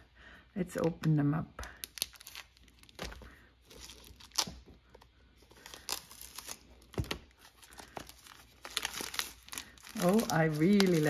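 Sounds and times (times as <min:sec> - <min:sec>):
plastic shrink-wrap tearing: 0:01.7 - 0:04.6, 0:05.5 - 0:11.0.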